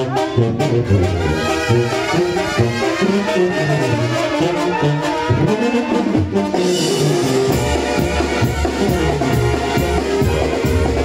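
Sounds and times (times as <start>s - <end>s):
heavy bass line: 0.0s - 11.0s
trumpets and trombones playing: 0.0s - 11.0s.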